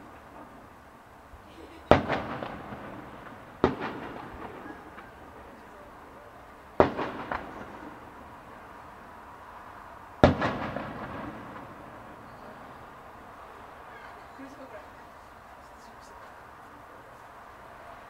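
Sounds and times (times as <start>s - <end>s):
firework shells bursting: 1.9s - 8.4s, 10.2s - 13.0s
small firework cracks: 1.9s - 8.8s, 10.2s - 14.8s.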